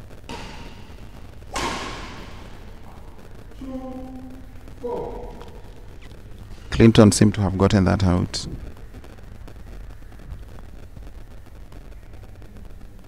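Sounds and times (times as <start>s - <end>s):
racket striking shuttlecock: 0.3s - 3.1s.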